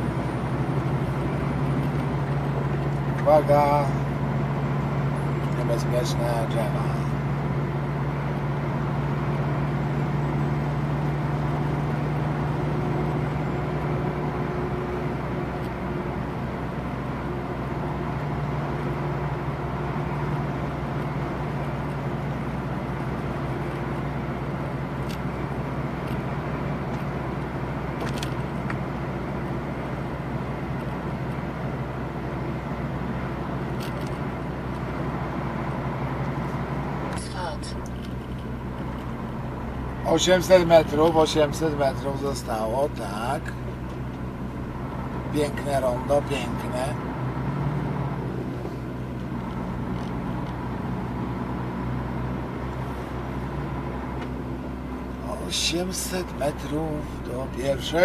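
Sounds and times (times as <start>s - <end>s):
diesel truck engine droning: 0.0s - 58.0s
tyre and road noise: 0.0s - 58.0s.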